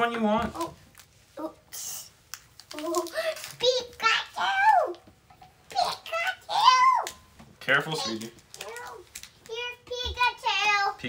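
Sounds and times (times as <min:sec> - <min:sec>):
child's high-pitched wordless vocal: 0:01.4 - 0:05.1, 0:05.7 - 0:07.2, 0:08.0 - 0:11.0.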